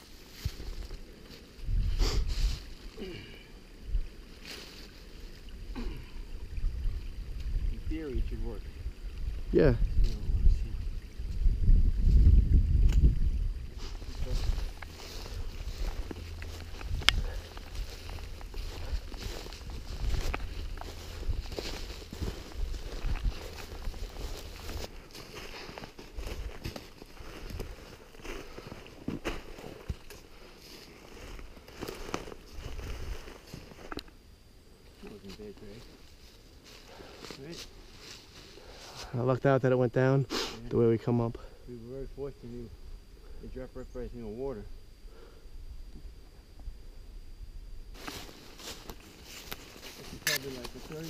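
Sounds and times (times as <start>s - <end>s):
low rumble on microphone: 1.6s - 4.1s, 5.5s - 26.6s
carcass dragged over forest floor: 13.8s - 33.9s, 35.1s - 39.2s, 48.0s - 51.0s
footsteps crunching in snowy leaves: 13.8s - 33.9s, 35.2s - 39.1s, 48.0s - 51.0s
twigs snapping: 14.6s - 25.6s.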